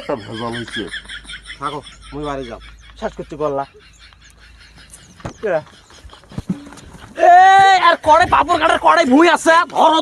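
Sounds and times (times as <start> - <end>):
man yelling: 7.2 - 10.0.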